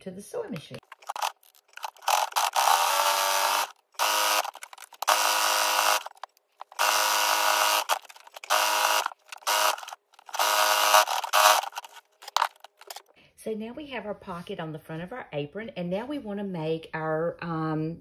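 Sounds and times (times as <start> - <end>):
sewing machine whirring: 0.8 - 13.0.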